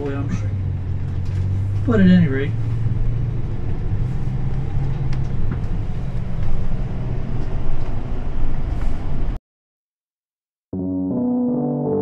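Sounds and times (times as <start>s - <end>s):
road noise: 0.0s - 9.4s
vehicle engine drone: 0.0s - 9.4s.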